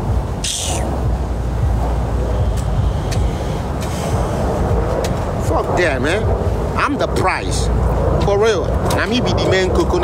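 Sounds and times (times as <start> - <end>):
steady low rumble: 0.0 - 10.0
short hiss: 0.4 - 0.9.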